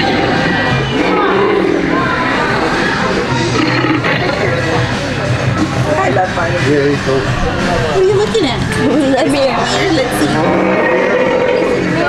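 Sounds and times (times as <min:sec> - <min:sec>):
music with growling roaring effects: 0:00.0 - 0:05.8, 0:08.7 - 0:12.0.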